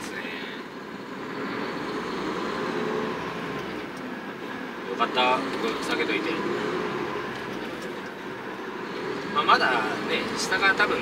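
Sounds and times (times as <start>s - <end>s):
truck engine and road noise: 0.0s - 11.0s.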